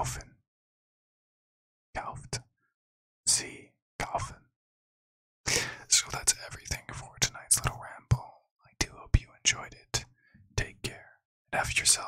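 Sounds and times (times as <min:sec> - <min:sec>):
person whispering into microphone: 0:02.0 - 0:02.4, 0:03.3 - 0:04.4, 0:05.5 - 0:12.0.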